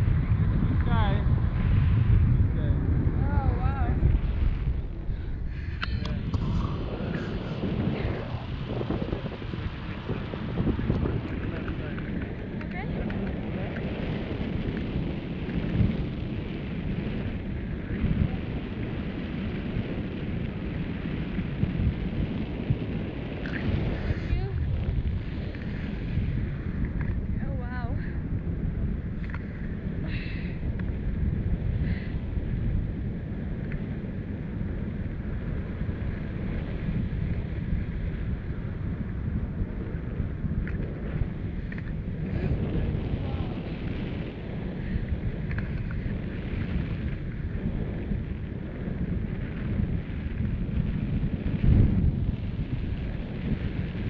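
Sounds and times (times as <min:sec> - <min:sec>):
wind rushing over microphone: 0:00.0 - 0:54.0.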